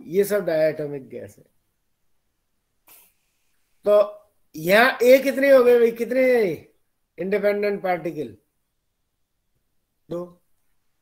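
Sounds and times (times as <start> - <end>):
faint puff of noise: 2.8 - 3.9.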